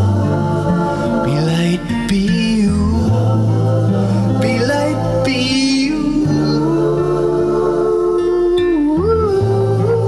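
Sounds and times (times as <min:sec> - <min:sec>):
guitar: 0:00.0 - 0:10.0
wordless hummed vocal: 0:00.0 - 0:10.0.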